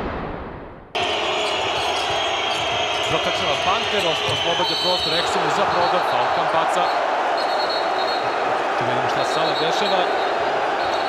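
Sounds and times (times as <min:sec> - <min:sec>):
arena crowd din: 0:01.0 - 0:11.0.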